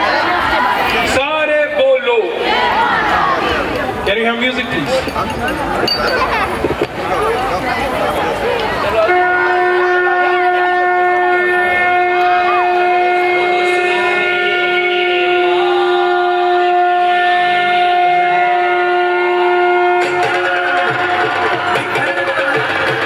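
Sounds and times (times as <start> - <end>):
faint crowd chatter: 0.0 - 23.0
long steady horn-like note: 9.0 - 22.0.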